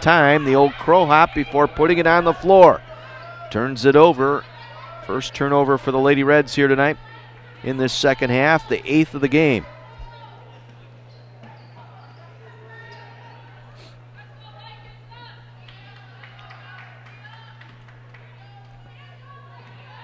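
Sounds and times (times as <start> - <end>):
distant voices: 0.0 - 20.0
steady low hum: 0.0 - 20.0.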